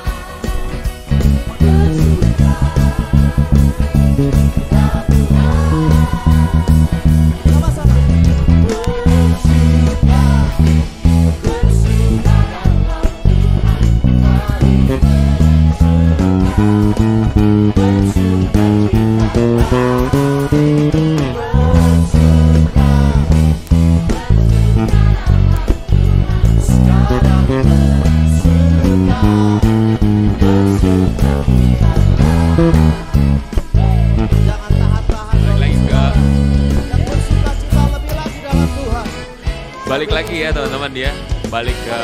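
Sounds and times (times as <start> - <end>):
electric bass line: 0.0 - 41.4
live band with singing: 0.0 - 42.0.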